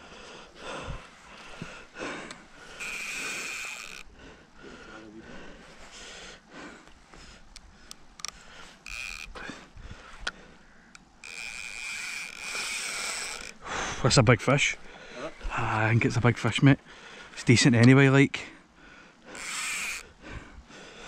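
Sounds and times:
fishing reel drag buzzing: 0:02.6 - 0:04.2, 0:08.2 - 0:09.6, 0:10.8 - 0:13.7, 0:19.3 - 0:20.2.

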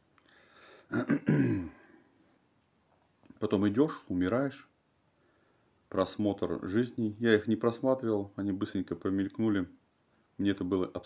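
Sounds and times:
man clearing throat: 0:00.9 - 0:01.9.

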